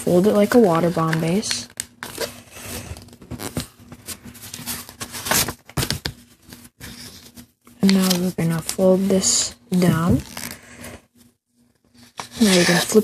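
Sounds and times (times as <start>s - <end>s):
paper rustling and crinkling: 0.3s - 13.0s.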